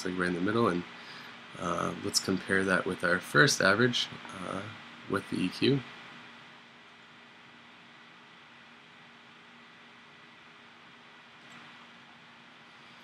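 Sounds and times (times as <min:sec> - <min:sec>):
faint constant hum: 0:00.0 - 0:13.0
low steady hiss: 0:00.0 - 0:13.0.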